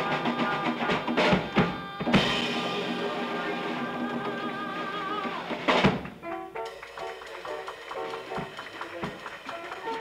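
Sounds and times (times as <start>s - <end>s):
jazz piano bass and drums: 5.1s - 9.3s.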